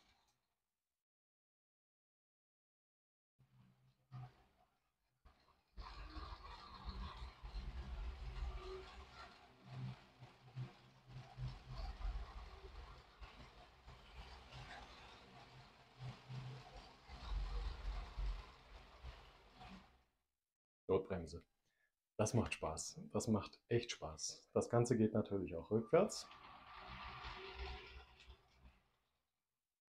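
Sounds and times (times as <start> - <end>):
toy train motor rumbling: 5.3 - 20.0, 26.1 - 28.9.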